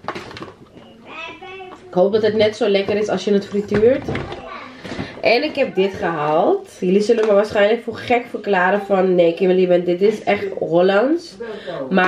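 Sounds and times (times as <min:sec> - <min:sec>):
faint child's voice: 0:00.8 - 0:02.0, 0:04.2 - 0:04.9.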